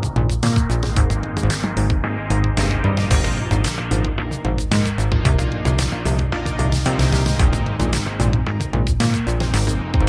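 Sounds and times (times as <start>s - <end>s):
electronic music with beat: 0.0s - 10.0s.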